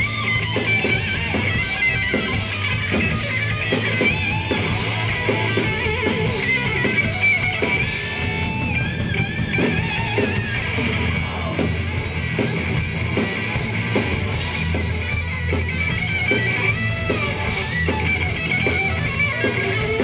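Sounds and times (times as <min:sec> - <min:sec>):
distorted electric guitar lead: 0:00.0 - 0:20.0
hardcore band playing live: 0:00.0 - 0:20.0.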